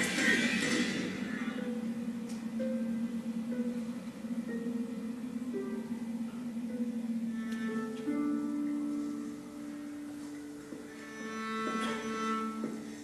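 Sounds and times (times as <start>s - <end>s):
slow classical string music: 0.0s - 13.0s.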